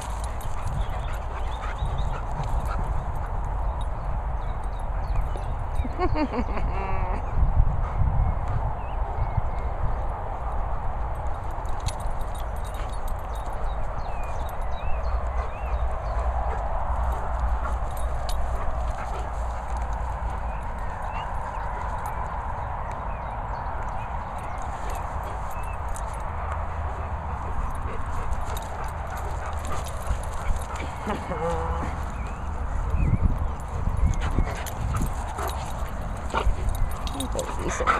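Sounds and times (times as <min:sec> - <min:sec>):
wind hiss and rumble: 0:00.0 - 0:37.9.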